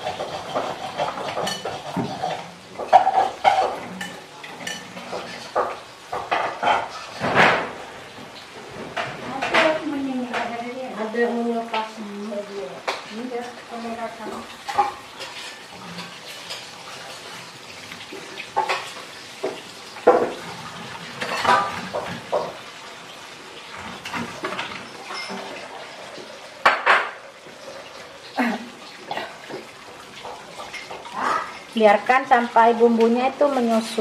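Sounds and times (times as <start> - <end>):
spatula scraping a wok: 0.0 - 5.8, 14.3 - 17.6
liquid simmering hiss: 0.0 - 34.0.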